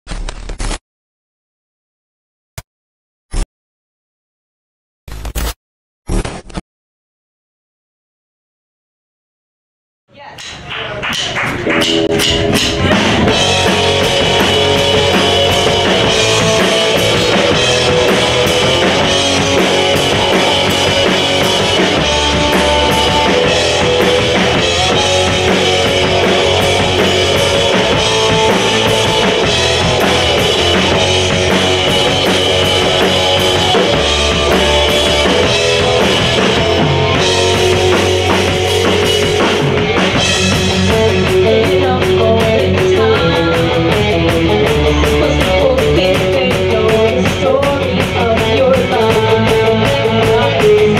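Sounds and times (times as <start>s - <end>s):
drum kit: 10.2s - 50.9s
bass guitar: 10.6s - 50.9s
bass drum thumping: 11.2s - 50.9s
electric guitar: 11.4s - 50.9s.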